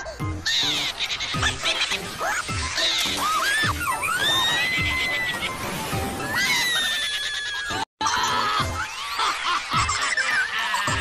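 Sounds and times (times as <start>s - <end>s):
cartoon background music: 0.0s - 11.0s.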